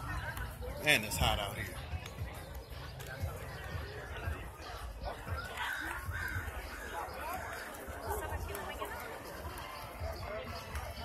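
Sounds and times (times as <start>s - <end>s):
bird cawing: 5.6s - 6.9s.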